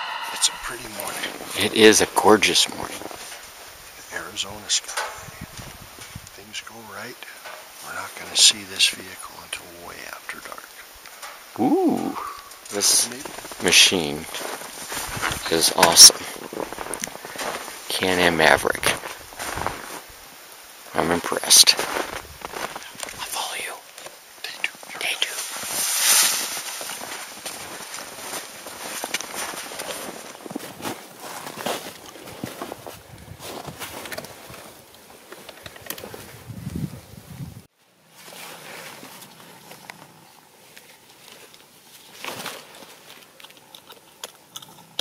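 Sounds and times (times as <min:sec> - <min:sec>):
low whispering: 0:00.0 - 0:03.2, 0:11.6 - 0:14.4, 0:22.8 - 0:25.5
footsteps crunching through snow: 0:13.0 - 0:20.3, 0:21.6 - 0:23.2, 0:24.8 - 0:35.4
small irregular clicks: 0:43.0 - 0:45.0.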